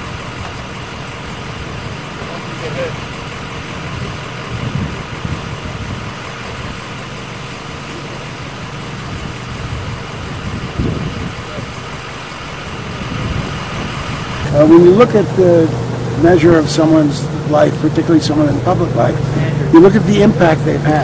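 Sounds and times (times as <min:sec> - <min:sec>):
vehicle engine idling: 0:00.0 - 0:21.0.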